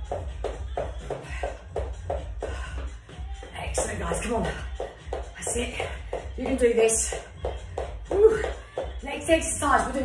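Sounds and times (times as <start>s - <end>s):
footsteps running on wooden floor: 0.0s - 9.0s
music playing: 0.0s - 10.0s.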